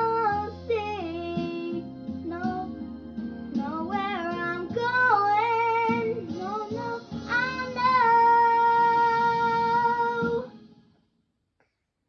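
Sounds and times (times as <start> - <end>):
girl singing: 0.0 - 2.8, 3.6 - 10.5.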